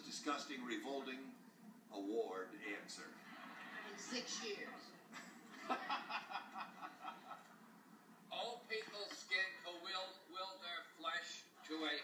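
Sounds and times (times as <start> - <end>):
audience laughter through tv speaker: 3.1 - 7.5.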